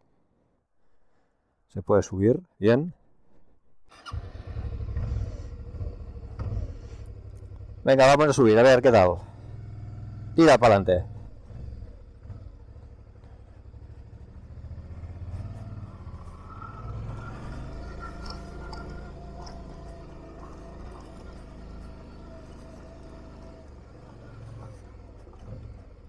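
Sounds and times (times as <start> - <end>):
motorcycle engine pulling at low revs: 3.9 - 26.0
stones clicking under tyres: 15.3 - 25.8.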